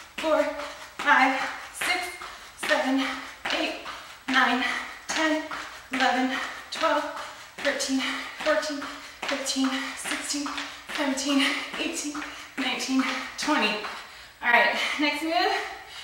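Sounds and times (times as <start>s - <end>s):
woman counting aloud: 0.2s - 13.8s, 14.4s - 15.8s.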